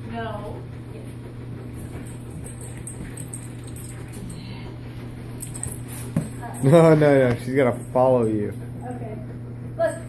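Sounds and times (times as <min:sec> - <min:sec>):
steady low hum: 0:00.0 - 0:10.0
light metallic jingling: 0:01.8 - 0:09.2.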